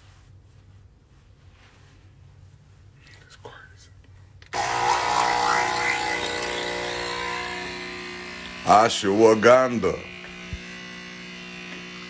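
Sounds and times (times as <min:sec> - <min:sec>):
electric blender motor running: 0:04.5 - 0:12.0.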